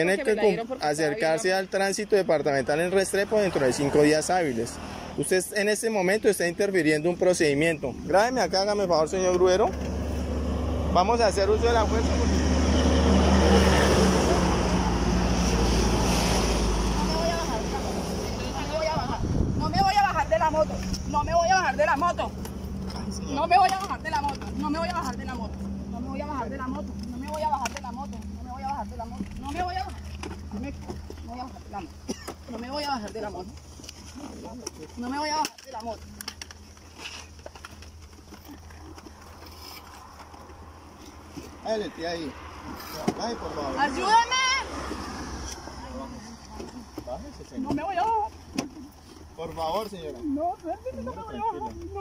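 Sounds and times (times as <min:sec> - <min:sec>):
vehicle engine humming: 0:00.0 - 0:52.0.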